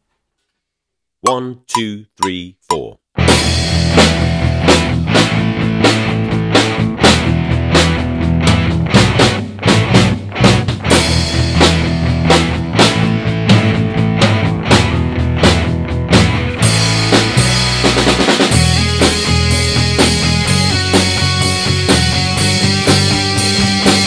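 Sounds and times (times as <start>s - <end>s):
bass line: 1.2s - 3.0s
electric guitar: 3.4s - 24.0s.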